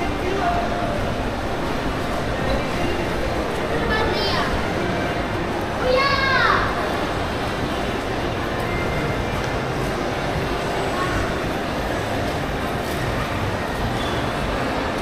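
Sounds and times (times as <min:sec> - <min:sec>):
faint voices: 0:00.0 - 0:15.0
mall hall hum: 0:00.0 - 0:15.0.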